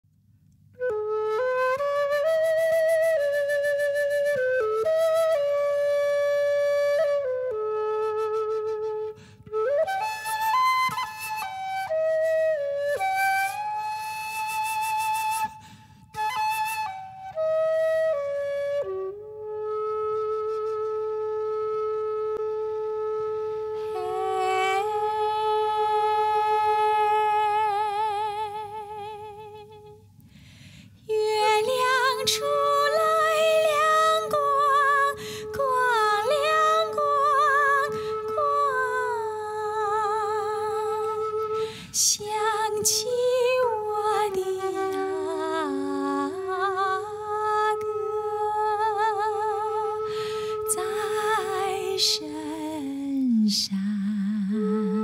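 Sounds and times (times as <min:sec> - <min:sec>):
solo flute melody: 0:00.7 - 0:30.1, 0:31.1 - 0:55.0.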